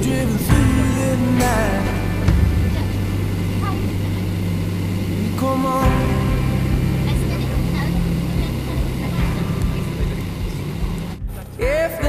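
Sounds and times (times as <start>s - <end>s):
jet engine cabin rumble: 0.0s - 11.4s.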